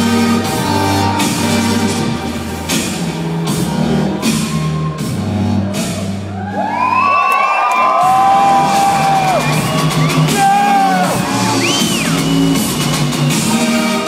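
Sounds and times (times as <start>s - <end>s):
loud live electronic music: 0.0s - 14.0s
audience whooping and yelling: 3.0s - 13.6s.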